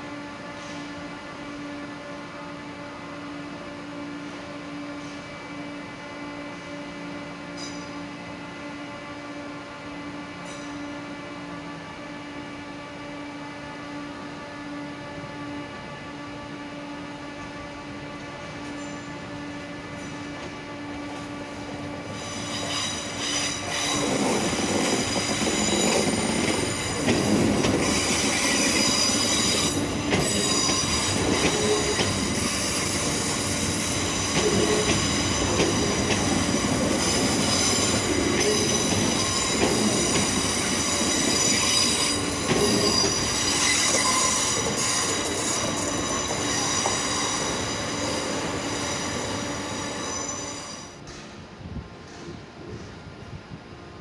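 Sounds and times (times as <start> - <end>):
train rumbling: 0.0 - 54.0
high-pitched brake squeals: 22.1 - 27.0, 27.8 - 51.0.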